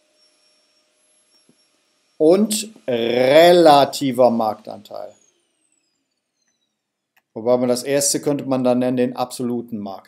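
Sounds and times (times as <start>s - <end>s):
man speaking: 2.2s - 5.1s, 7.4s - 10.0s.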